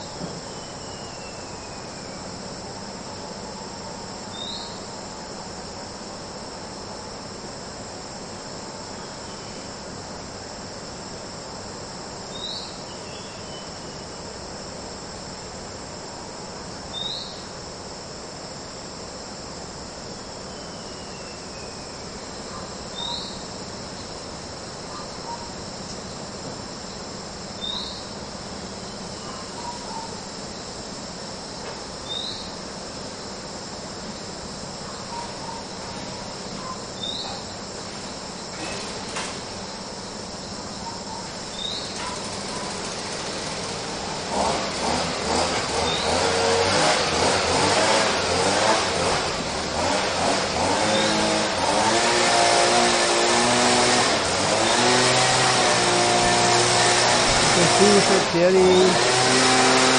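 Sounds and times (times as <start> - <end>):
insect chorus: 0.0 - 59.9
short insect chirp: 0.0 - 59.9.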